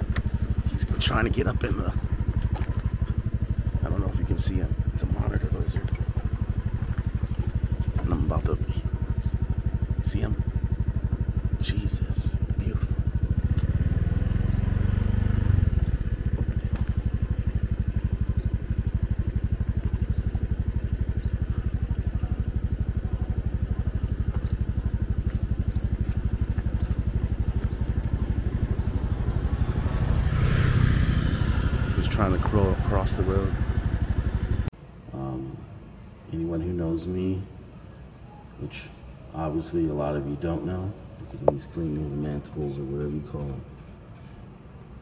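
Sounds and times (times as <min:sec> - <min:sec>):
motorcycle engine idling: 0:00.0 - 0:34.7.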